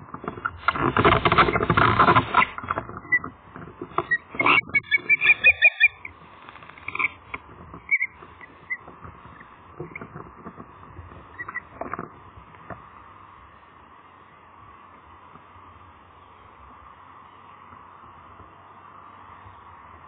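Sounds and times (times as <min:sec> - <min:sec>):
osprey chirping and whistling: 0:04.1 - 0:06.1, 0:07.8 - 0:08.8.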